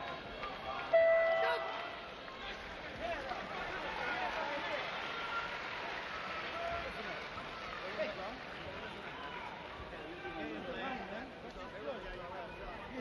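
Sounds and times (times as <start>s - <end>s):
crowd voices talking: 0.0s - 13.0s.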